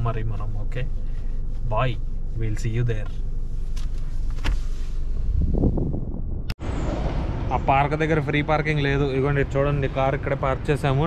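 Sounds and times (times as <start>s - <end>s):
car cabin rumble: 0.0s - 6.6s
outdoor street noise: 5.9s - 11.0s.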